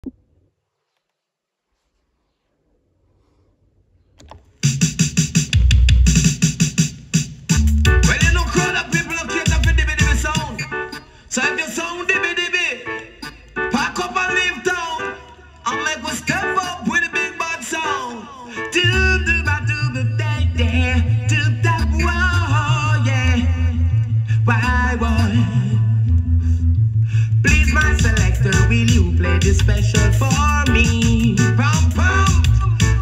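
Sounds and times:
reggae music with drum machine: 4.2s - 26.1s, 27.1s - 33.0s
deep bass note: 7.6s - 8.6s, 18.9s - 33.0s
person singing: 7.9s - 10.8s, 13.7s - 26.2s, 27.3s - 33.0s.

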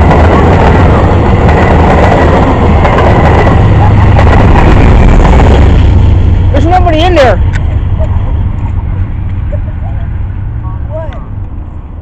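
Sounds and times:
passenger train rumble: 0.0s - 12.0s.

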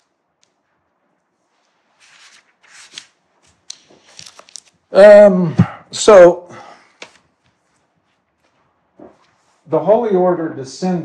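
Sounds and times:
faint rustling: 6.8s - 10.0s.

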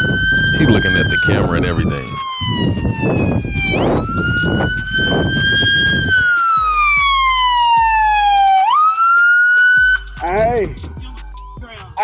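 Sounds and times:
police siren wailing: 0.0s - 10.2s
man shouting: 0.6s - 2.0s.

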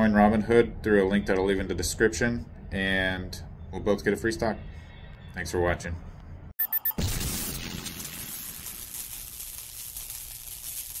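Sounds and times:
electric crackling and hissing: 7.0s - 11.0s.

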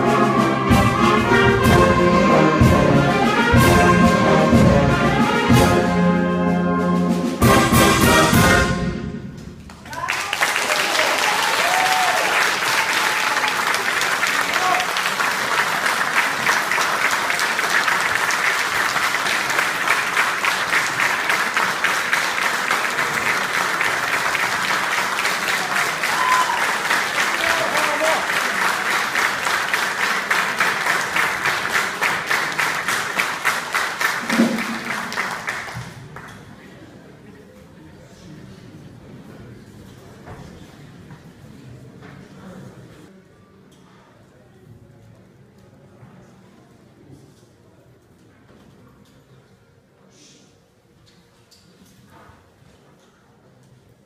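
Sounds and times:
wind band playing: 0.0s - 9.4s
audience applauding: 9.6s - 36.7s.

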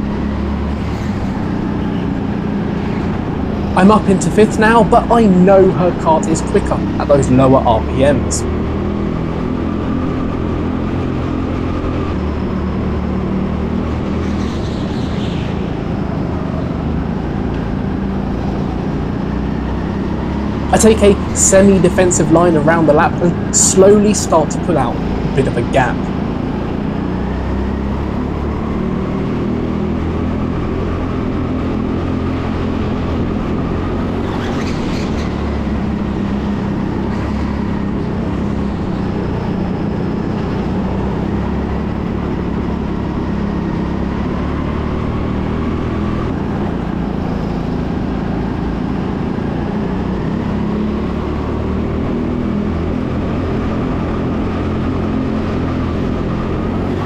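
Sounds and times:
go-kart engine running: 0.0s - 57.0s.

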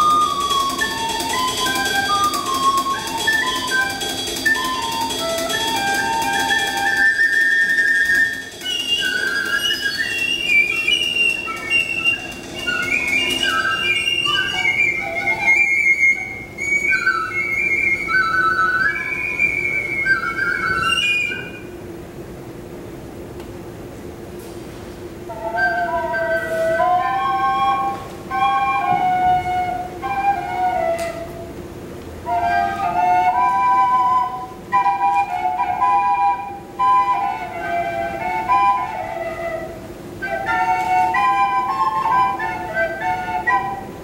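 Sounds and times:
drum kit percussion: 0.0s - 15.3s
flute playing free jazz: 0.0s - 22.0s, 25.1s - 44.0s.

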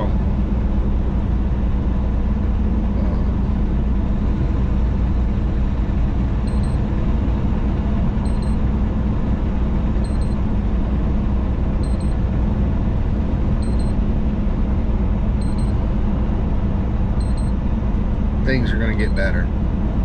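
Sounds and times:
truck engine and road noise: 0.0s - 20.0s.

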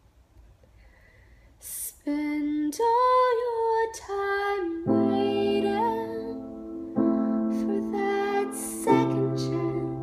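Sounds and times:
breath in: 0.7s - 1.6s
woman singing unaccompanied: 1.6s - 10.0s.

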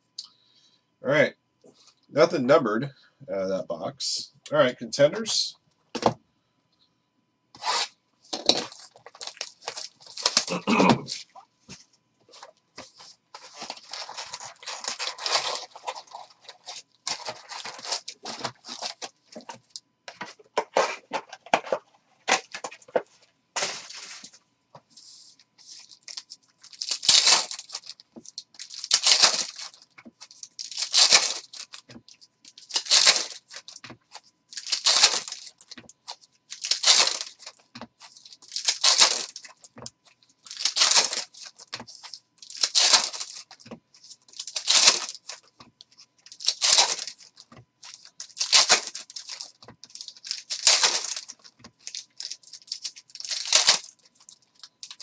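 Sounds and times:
foil wrappers rustling and tearing: 7.6s - 11.4s, 12.3s - 23.0s, 23.6s - 24.3s, 25.0s - 55.0s.

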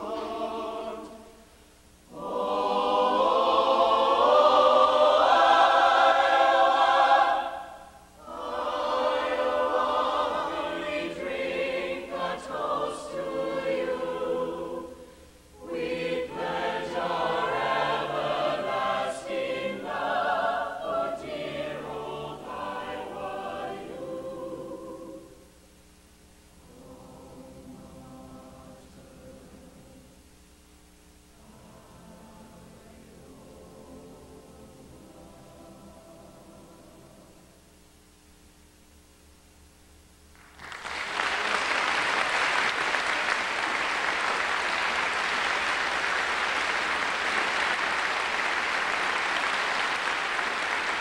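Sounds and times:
mixed choir singing in harmony: 0.0s - 1.5s, 2.1s - 25.5s, 26.6s - 30.2s, 31.4s - 37.6s.

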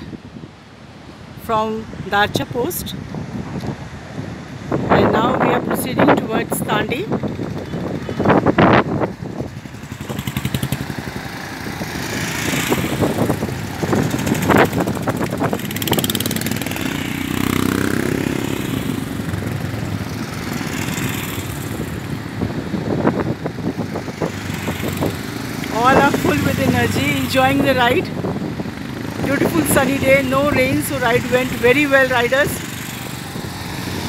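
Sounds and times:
motorcycles riding past: 3.7s - 34.0s.

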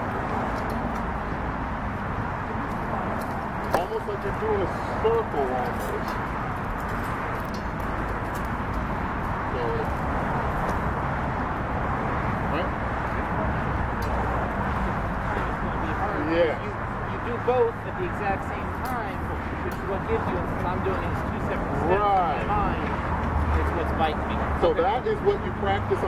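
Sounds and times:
outdoor background noise: 0.0s - 26.0s.

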